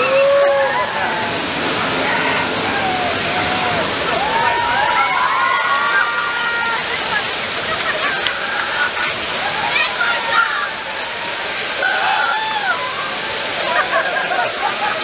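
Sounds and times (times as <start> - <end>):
torrent of water rushing: 0.0 - 15.0.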